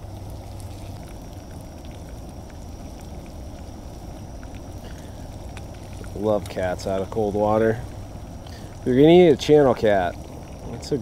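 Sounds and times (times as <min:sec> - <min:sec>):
fish frying in oil: 0:00.0 - 0:11.0
oil popping and crackling: 0:00.0 - 0:11.0.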